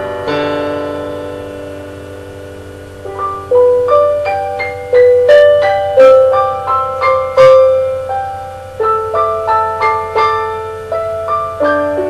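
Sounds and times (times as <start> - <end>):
held keyboard chord: 0.0 - 12.0.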